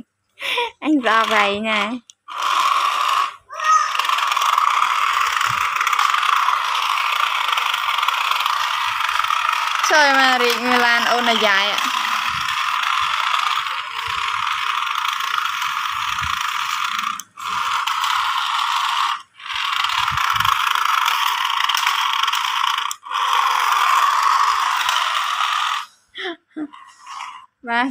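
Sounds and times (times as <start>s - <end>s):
toy car electric motor whirring: 0.4s - 27.9s.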